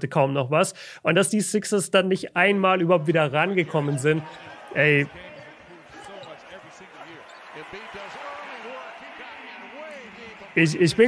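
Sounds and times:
commentator talking: 1.1 - 11.0
arena noise: 2.4 - 11.0.

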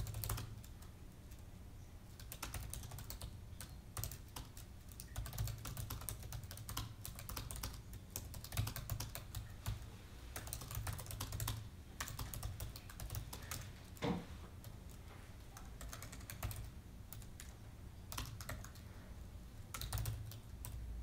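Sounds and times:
laptop keyboard typing: 0.0 - 1.4, 2.1 - 14.0, 14.6 - 18.9, 19.7 - 20.8.

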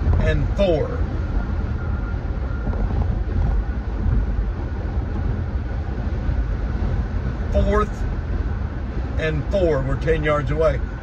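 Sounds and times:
road and engine noise in vehicle: 0.0 - 11.0.

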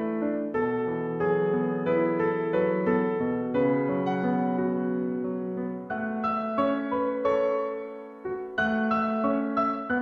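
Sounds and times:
solo piano chords: 0.0 - 10.0.

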